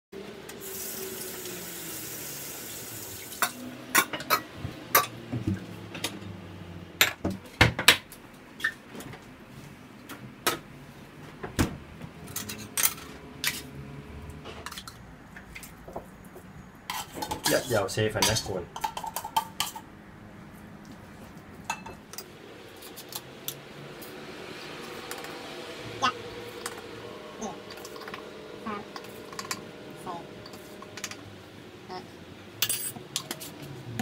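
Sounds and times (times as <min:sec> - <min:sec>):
metal bowls clanking: 0:03.4 - 0:05.2, 0:26.1 - 0:31.3.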